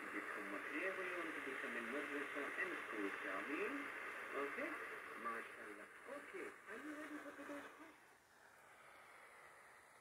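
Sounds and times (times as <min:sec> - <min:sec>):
person talking over radio speaker: 0:00.0 - 0:08.0
steady radio hiss: 0:00.0 - 0:10.0.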